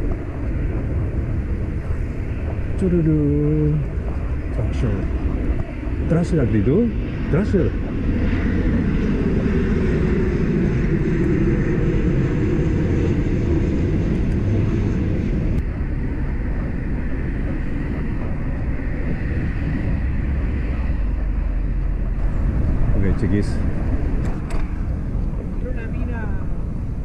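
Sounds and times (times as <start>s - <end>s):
bicycle road rumble: 0.0s - 27.0s
wind noise: 0.0s - 27.0s.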